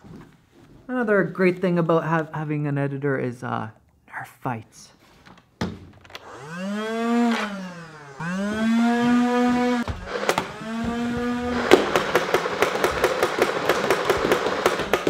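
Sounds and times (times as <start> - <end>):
blaster flywheels whining: 6.2 - 15.0
fast stream of sharp shots: 11.6 - 15.0.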